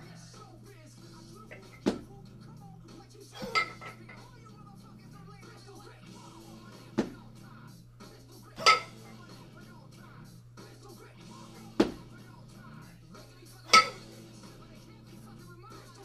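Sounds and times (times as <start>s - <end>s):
kettlebells clanking: 3.4s - 4.3s, 8.6s - 9.1s, 13.7s - 14.2s
dull thud: 6.9s - 7.2s, 11.7s - 12.1s.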